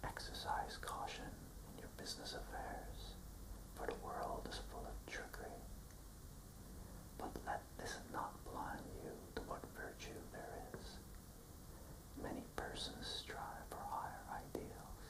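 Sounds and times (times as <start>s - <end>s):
man whispering: 0.0s - 3.2s, 3.8s - 5.7s, 7.2s - 11.1s, 12.2s - 15.0s.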